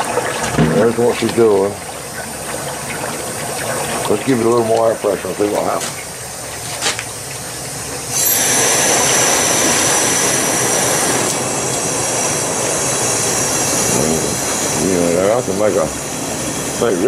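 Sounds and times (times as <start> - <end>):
air bubbling through liquid: 8.0 - 14.9
high hissing whistle: 8.1 - 11.2.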